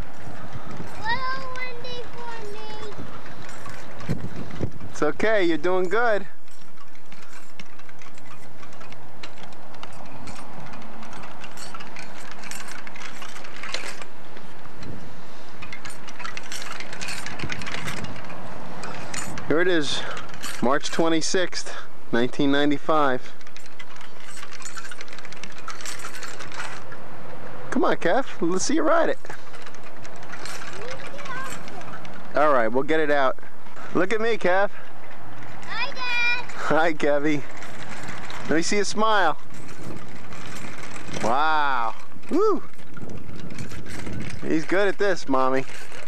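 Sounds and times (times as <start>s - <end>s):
bicycle rolling on concrete: 0.0s - 46.0s
small clicks and rattles: 0.0s - 46.0s
wheels hissing on concrete: 11.4s - 17.8s.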